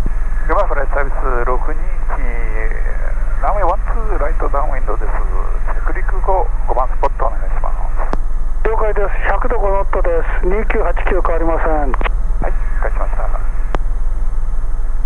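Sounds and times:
helicopter drone: 0.0 - 15.0
thin voices over headset: 9.9 - 13.7.

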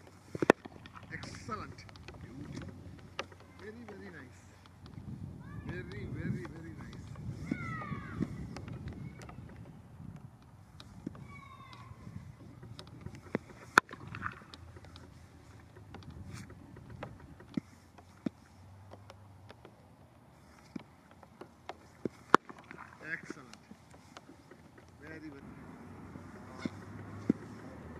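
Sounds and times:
wind rumbling on microphone: 0.0 - 17.9.

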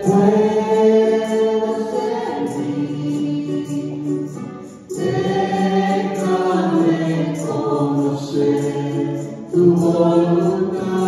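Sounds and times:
voices singing a slow hymn: 0.0 - 11.0.

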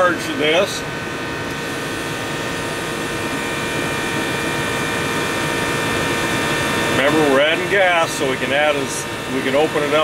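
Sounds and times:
air conditioner unit running: 0.0 - 10.0.

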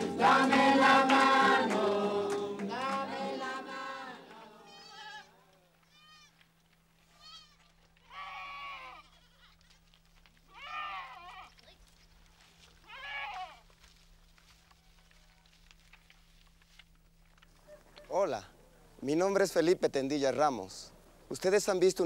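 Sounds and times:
goats bleating: 4.6 - 6.4, 7.1 - 11.8, 12.5 - 13.9.

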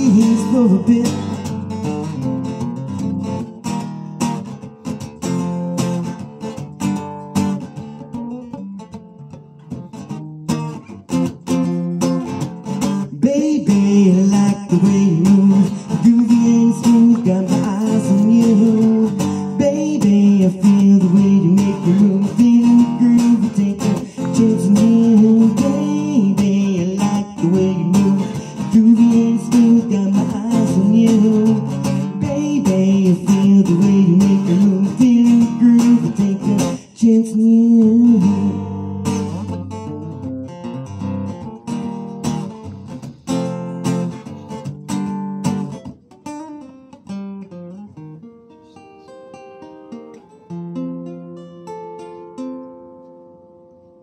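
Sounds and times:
man singing: 0.0 - 3.0, 12.8 - 40.3
acoustic guitar: 0.0 - 54.0.

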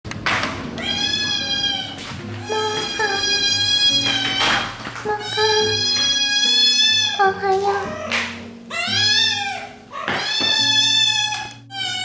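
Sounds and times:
kitten meowing: 0.8 - 12.0.

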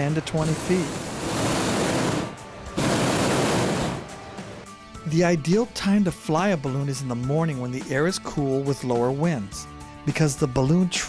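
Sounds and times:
propane burner blast: 0.0 - 4.7
faint background music: 0.0 - 11.0.

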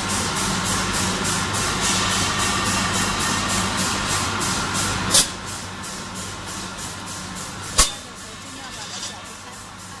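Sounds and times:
machinery hum: 0.0 - 10.0
pulsing high hiss: 0.0 - 10.0.

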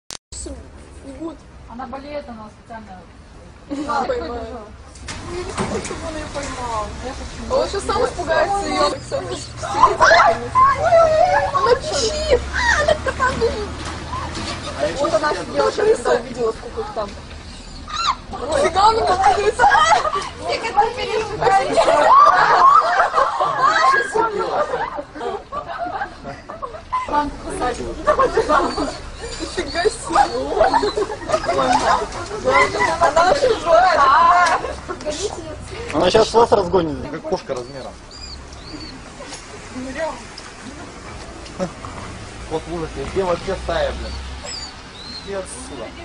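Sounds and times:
rat squeaking: 37.6 - 38.9.

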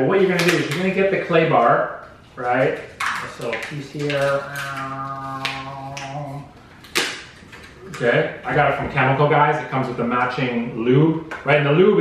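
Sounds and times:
man saying uh: 3.3 - 6.5.

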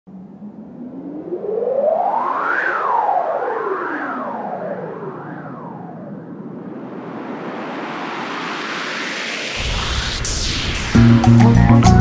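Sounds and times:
synthesizer tone sweeping in pitch: 0.1 - 12.0
hissing noise: 6.5 - 12.0.

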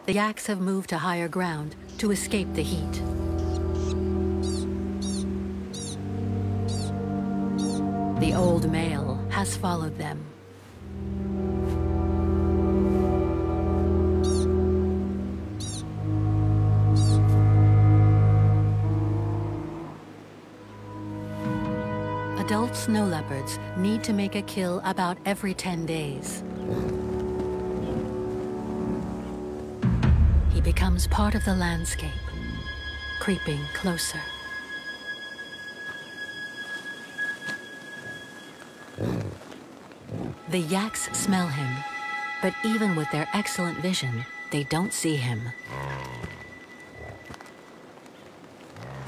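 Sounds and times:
low documentary music: 0.0 - 49.0
pika chirping calls: 3.1 - 8.0, 14.2 - 14.6, 15.5 - 16.0, 16.9 - 17.3
yak grunting: 26.6 - 28.2, 39.0 - 40.4, 45.6 - 46.4.

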